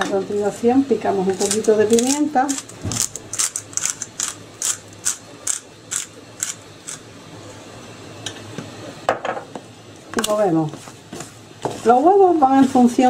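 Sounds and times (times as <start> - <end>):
pepper mill grinding: 1.3 - 7.1.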